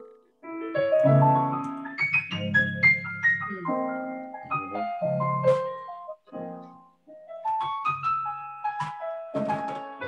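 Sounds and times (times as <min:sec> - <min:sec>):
slow gospel piano: 0:00.0 - 0:10.0.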